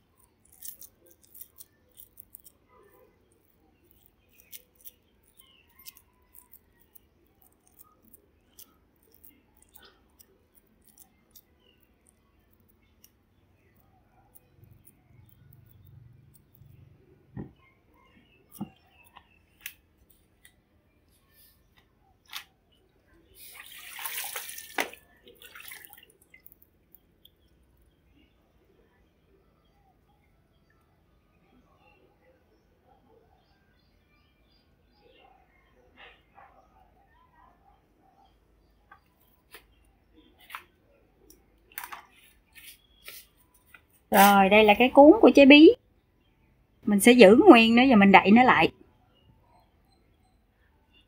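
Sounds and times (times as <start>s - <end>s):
soft clicks and squishes: 0.0s - 28.3s, 38.9s - 44.3s.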